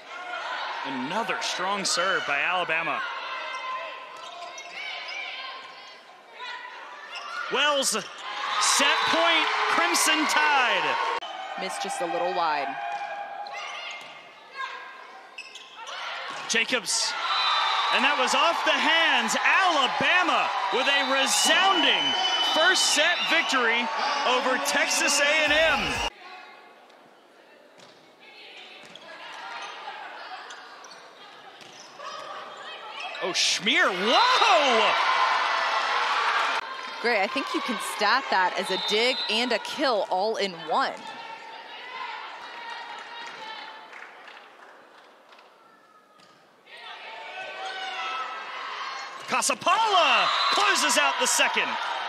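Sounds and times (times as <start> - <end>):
players calling: 7.4 - 12.8, 16.4 - 26.1, 33.2 - 40.9, 49.3 - 52.0
crowd noise echoing: 7.5 - 15.4, 16.3 - 26.9, 28.7 - 52.0.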